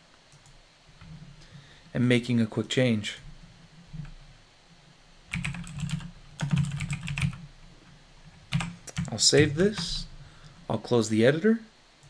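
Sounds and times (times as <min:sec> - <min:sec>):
typing on computer keyboard: 0:05.3 - 0:07.4, 0:08.5 - 0:10.0.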